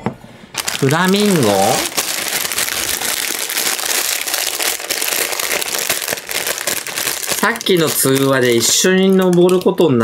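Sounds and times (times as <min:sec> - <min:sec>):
plastic bag crinkling: 0:00.5 - 0:10.0.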